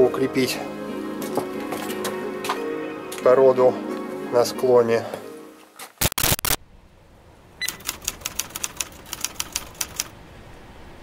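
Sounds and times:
typewriter key clicks: 7.7 - 10.1.

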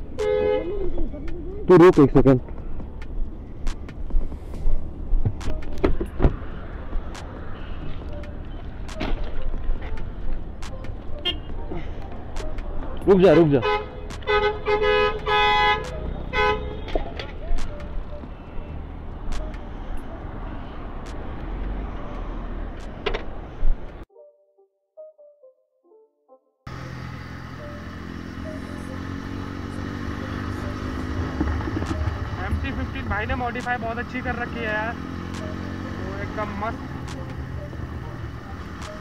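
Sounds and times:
road traffic rumble: 0.0 - 24.1, 26.7 - 39.0
vehicle horn honking: 0.1 - 0.9, 11.2 - 11.7, 13.2 - 17.3
knocks and clicks: 5.2 - 6.4.

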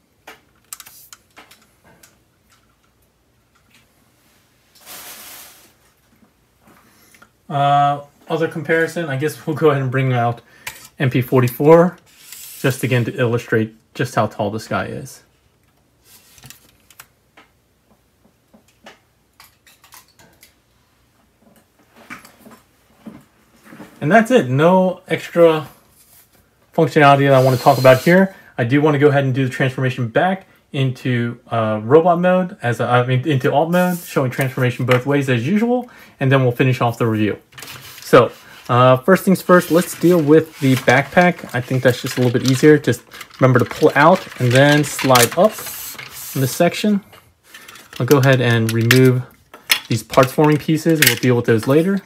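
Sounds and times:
plastic toy clicks and knocks: 47.6 - 51.3.

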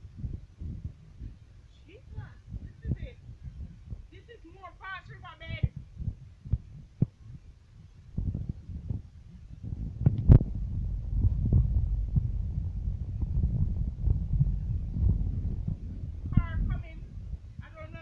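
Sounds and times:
vehicle cabin rumble: 8.2 - 18.0.

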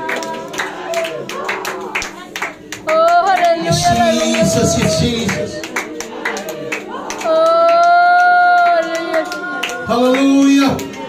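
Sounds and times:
congregation clapping rhythmically: 0.0 - 11.0.

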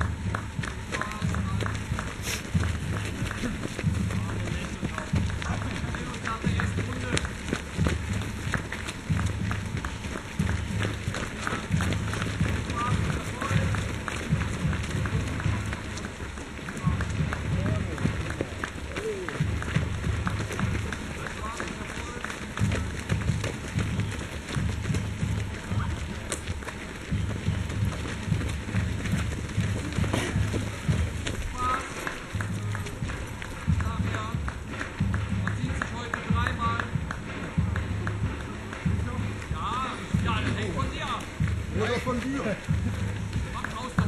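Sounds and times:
faint voices: 0.0 - 44.0
running footsteps on dirt path: 0.0 - 44.0.

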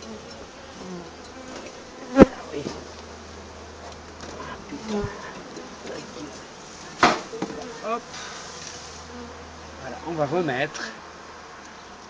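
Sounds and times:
honeybees humming: 0.0 - 12.0.

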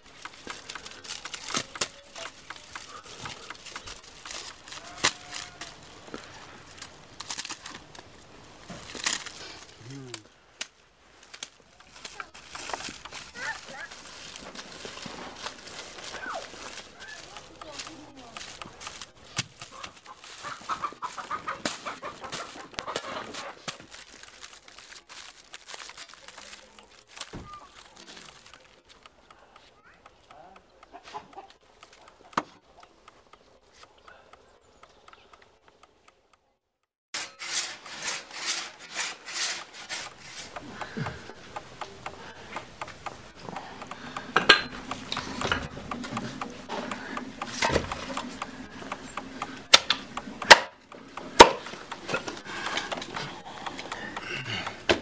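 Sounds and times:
reed strips crackling and rustling: 0.0 - 30.2, 37.3 - 54.9
chickens clucking: 19.6 - 23.7, 30.2 - 34.0.

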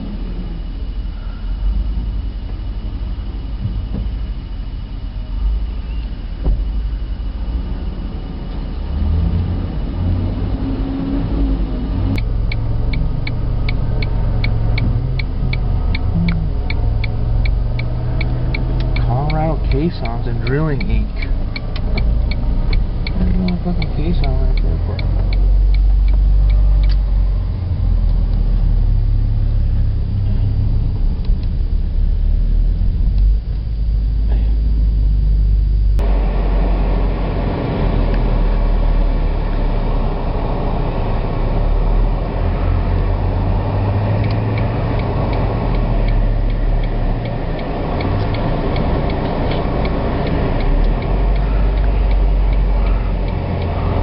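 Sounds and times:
car engine and road rumble: 0.0 - 54.0
fast even ticking: 12.1 - 27.0, 44.1 - 54.0.

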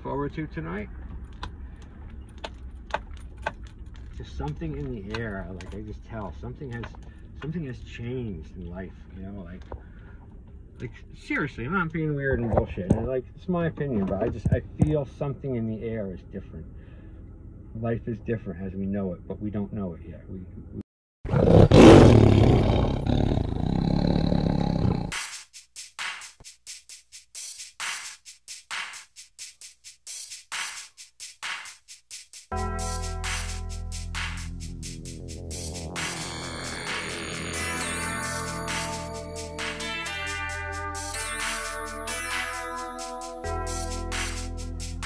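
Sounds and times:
loud roar: 21.3 - 25.1, 34.9 - 38.8.

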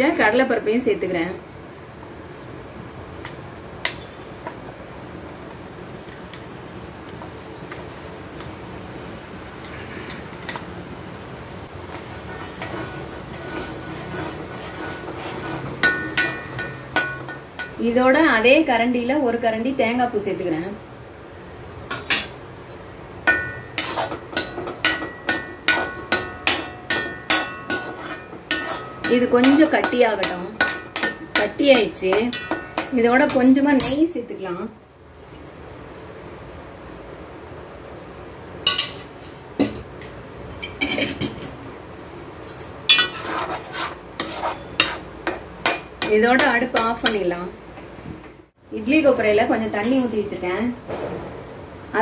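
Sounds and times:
metal spatula striking metal pan: 15.8 - 17.8, 23.3 - 34.0, 44.2 - 47.2.

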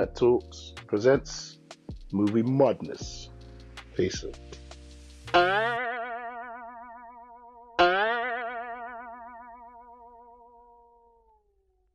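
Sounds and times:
twangy plucked note with vibrato: 5.3 - 10.5.

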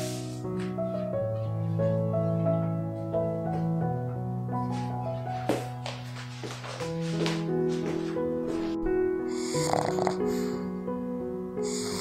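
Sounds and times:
background music with sustained notes: 0.0 - 12.0
dog snoring: 9.3 - 10.7, 11.6 - 12.0.

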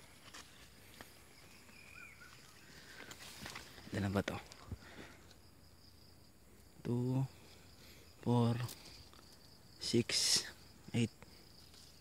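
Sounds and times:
rustling of plants: 0.0 - 5.4, 7.4 - 10.5, 11.2 - 12.0
faint chirps: 0.0 - 12.0.

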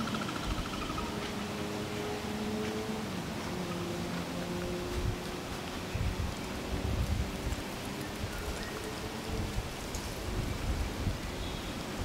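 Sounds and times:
wind on microphone: 4.3 - 12.0.

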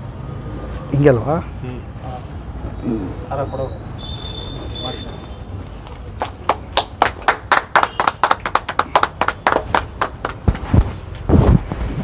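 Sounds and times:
people clapping: 5.7 - 11.3.

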